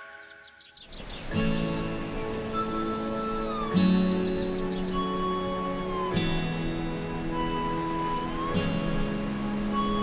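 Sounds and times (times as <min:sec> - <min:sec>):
soft slow background music: 0:00.0 - 0:10.0.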